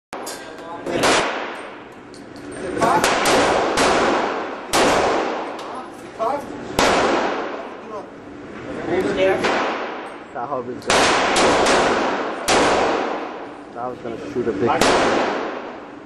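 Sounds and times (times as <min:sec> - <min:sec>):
gunshots echoing indoors: 0:00.9 - 0:01.9, 0:02.9 - 0:05.7, 0:06.8 - 0:07.8, 0:09.4 - 0:13.6, 0:14.7 - 0:16.0
voices: 0:02.1 - 0:03.4, 0:07.6 - 0:09.5, 0:13.6 - 0:15.2.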